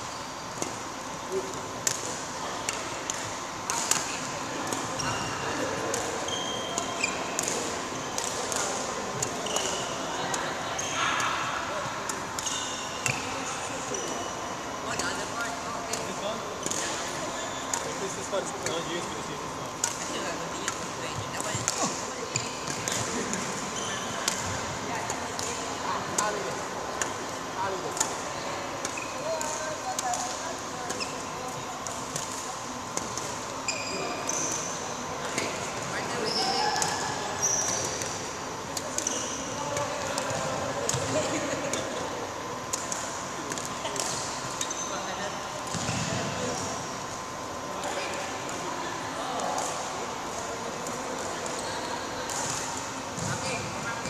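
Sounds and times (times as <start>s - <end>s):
shoe squeaks: 6.2s - 7.3s, 9.3s - 10.1s, 12.4s - 13.3s, 23.8s - 24.4s, 33.6s - 38.0s, 39.0s - 39.6s, 44.6s - 45.1s.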